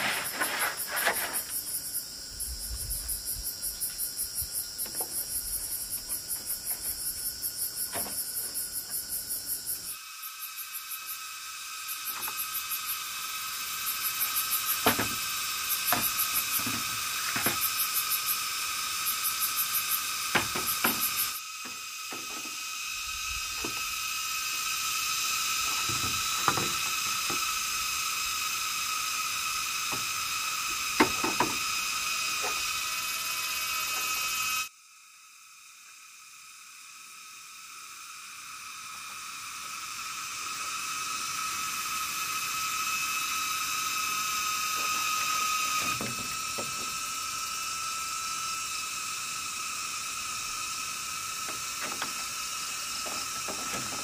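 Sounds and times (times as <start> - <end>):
high-pitched insect chorus: 0.0 - 54.0.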